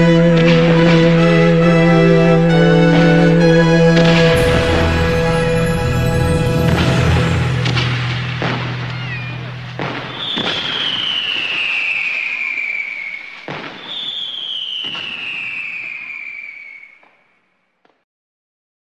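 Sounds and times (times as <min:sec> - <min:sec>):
music chord: 0:00.0 - 0:10.5
fireworks bangs and crackle: 0:04.4 - 0:18.0
falling firework whistles: 0:08.5 - 0:17.4.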